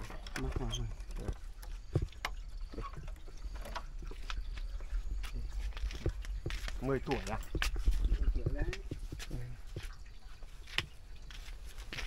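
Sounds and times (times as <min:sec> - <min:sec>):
light clicks and knocks: 0:00.0 - 0:10.0.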